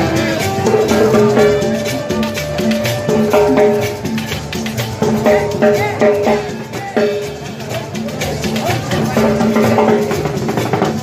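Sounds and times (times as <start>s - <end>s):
drums playing busy beat: 0.0s - 11.0s
latin street band music: 0.0s - 11.0s.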